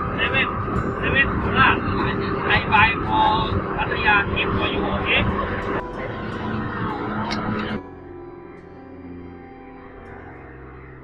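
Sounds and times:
speedboat engines running: 0.0s - 11.0s
man speaking: 1.1s - 5.4s.

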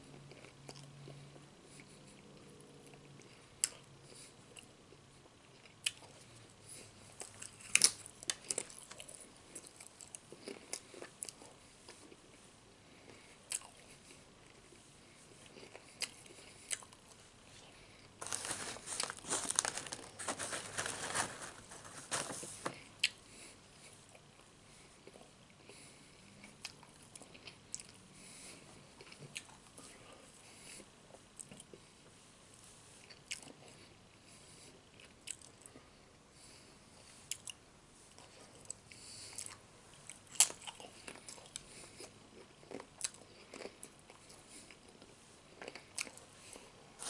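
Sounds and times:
bag crinkling: 18.2s - 22.9s
chips crunching and chewing: 18.2s - 23.2s, 40.2s - 46.7s.

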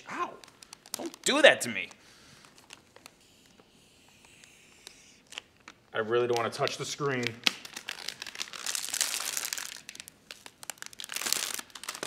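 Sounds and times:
plastic film peeling and crinkling: 0.0s - 12.0s.

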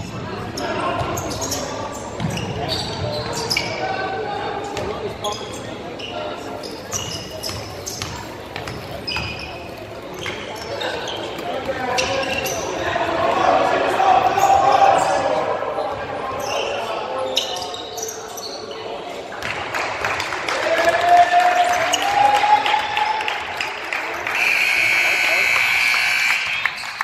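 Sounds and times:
sneaker squeaks: 0.0s - 4.1s, 4.8s - 12.8s, 15.9s - 19.0s, 24.4s - 27.0s
spectators' voices echoing: 0.0s - 17.8s, 18.6s - 27.0s.

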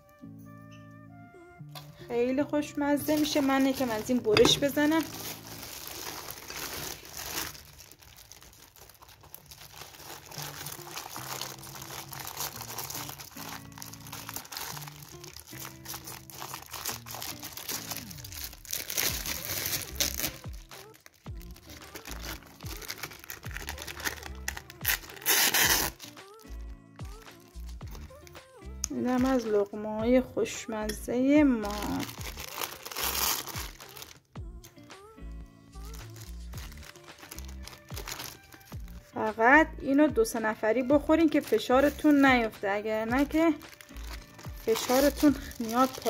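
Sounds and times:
background music: 0.0s - 46.0s
plastic wrap crinkling: 2.9s - 28.3s, 31.6s - 34.3s, 35.8s - 39.1s, 40.6s - 46.0s.

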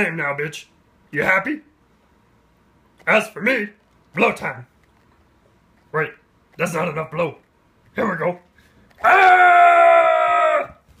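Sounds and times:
shrill raptor-like screech: 9.0s - 10.7s.

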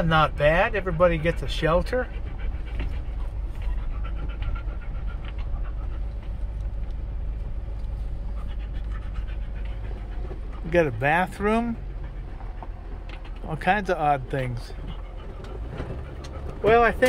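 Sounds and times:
dog panting: 0.0s - 17.0s
engine and tyres rumbling: 0.0s - 17.0s.

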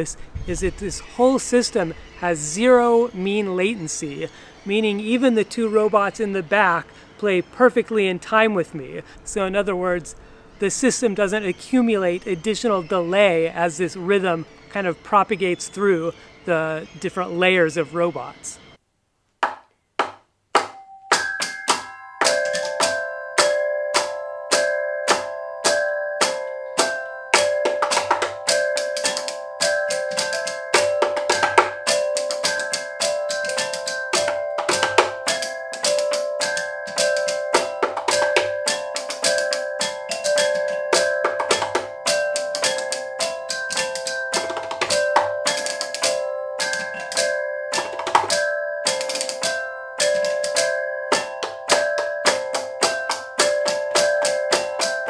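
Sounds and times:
hand tapping on wooden stool: 19.4s - 22.8s, 27.4s - 49.4s
robots tapping sharp clicks: 19.4s - 55.0s
steady pitched ringing tones: 20.6s - 55.0s.

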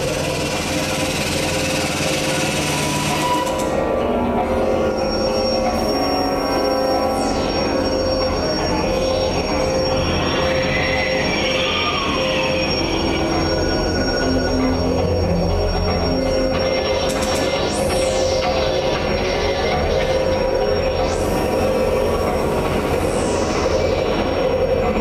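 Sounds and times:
high screeching tone: 0.0s - 25.0s
industrial electronic music: 0.0s - 25.0s.

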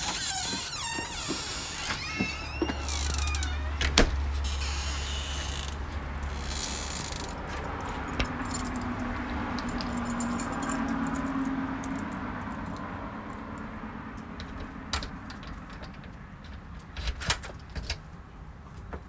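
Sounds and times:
low handling rumble: 0.0s - 8.8s
metallic jingling and clinking: 6.6s - 12.8s.

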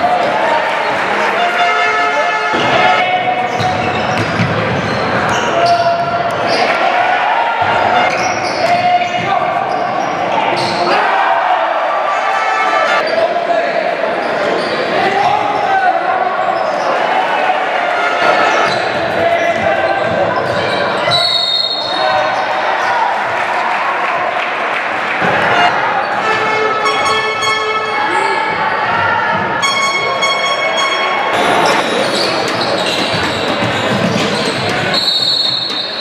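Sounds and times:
voices echoing in a hall: 0.0s - 36.0s.

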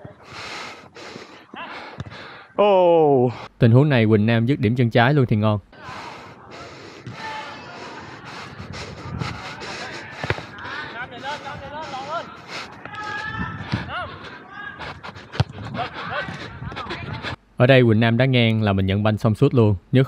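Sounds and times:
players calling out: 5.7s - 17.4s
ball strikes: 10.2s - 10.4s.

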